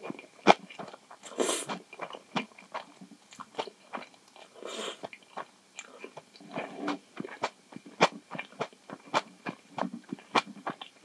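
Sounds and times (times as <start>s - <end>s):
wet chewing: 0.0s - 11.0s
slurping noodles: 1.2s - 1.8s, 4.5s - 5.1s.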